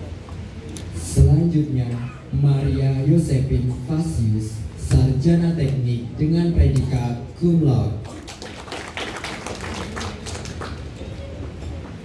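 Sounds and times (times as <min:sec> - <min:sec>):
audience clapping: 0:08.0 - 0:11.5.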